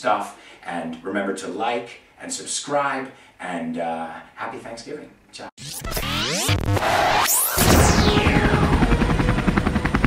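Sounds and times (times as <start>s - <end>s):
falling tone: 5.6s - 10.0s.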